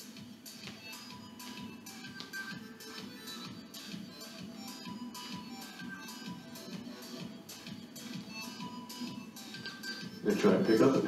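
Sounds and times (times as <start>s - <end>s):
quiet background music with beat: 0.0s - 11.0s.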